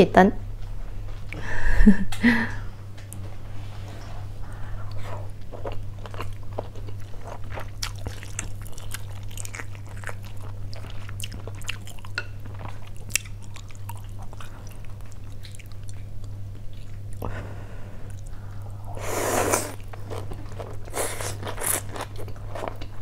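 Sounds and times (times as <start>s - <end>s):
steady low hum: 0.0s - 23.0s
person chewing food: 4.6s - 17.3s, 18.0s - 23.0s.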